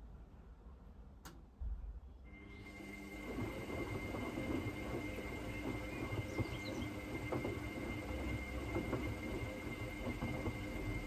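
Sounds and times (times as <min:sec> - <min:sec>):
motor whine: 0:02.3 - 0:11.0
washing machine drum rumbling: 0:02.6 - 0:11.0
wet laundry knocking and sloshing: 0:03.3 - 0:11.0.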